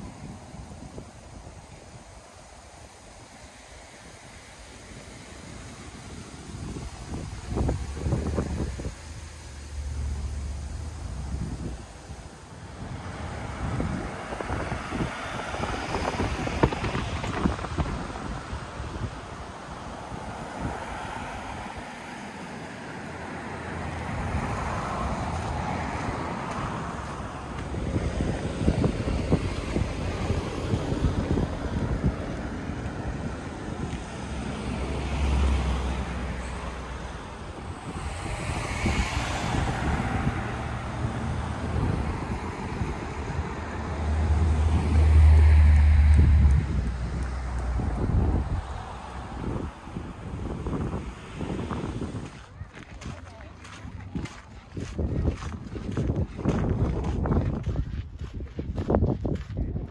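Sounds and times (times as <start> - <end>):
cars passing: 0.0 - 59.9
wind gusting on microphone: 0.0 - 59.9.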